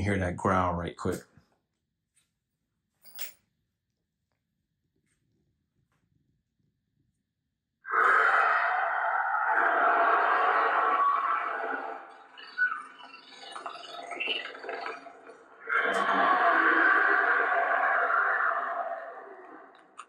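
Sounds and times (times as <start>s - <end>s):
dragon growl from speaker: 7.9s - 12.0s, 15.6s - 19.8s.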